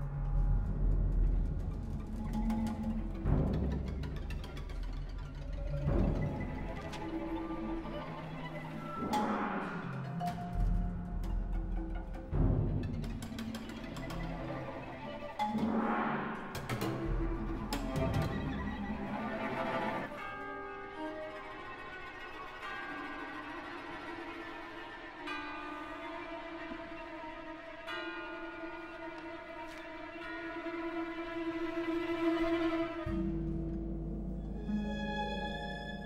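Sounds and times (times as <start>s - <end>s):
orchestra holding low notes: 0.0s - 36.0s.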